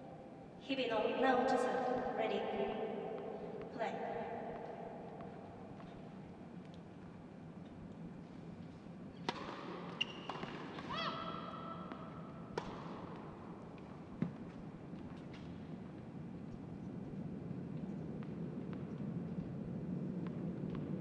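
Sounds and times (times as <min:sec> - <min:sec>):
steady low hum: 0:00.0 - 0:10.0, 0:11.2 - 0:21.0
tennis ball hit by racket: 0:09.2 - 0:13.3
shoe squeaks: 0:09.9 - 0:11.3.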